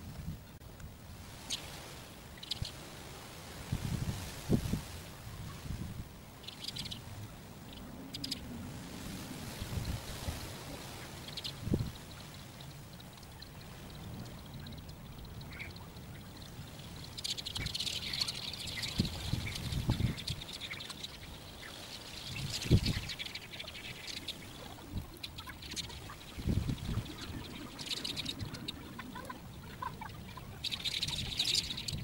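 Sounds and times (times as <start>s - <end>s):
water lapping: 7.7s - 32.0s.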